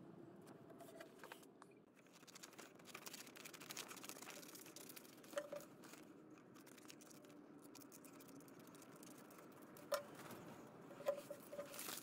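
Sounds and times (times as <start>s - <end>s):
paper crinkling and rustling: 0.8s - 8.4s, 9.1s - 12.0s
paper crumpling: 2.0s - 7.4s, 11.4s - 12.0s.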